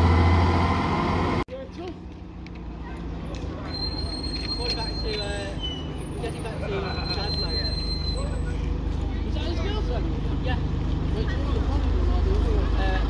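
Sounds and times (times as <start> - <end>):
diesel bus engine pulling away: 0.0 - 1.4
crowd chatter: 1.5 - 13.0.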